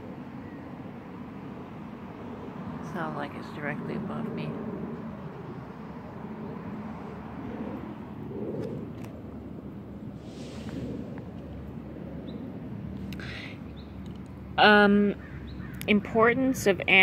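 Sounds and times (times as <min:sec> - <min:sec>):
plane flying overhead: 0:00.0 - 0:17.0.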